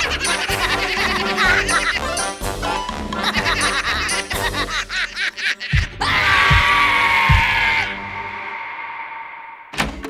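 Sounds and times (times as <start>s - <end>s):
cartoon voices laughing: 0.0s - 2.4s, 3.0s - 6.2s
cartoon music: 0.0s - 6.6s.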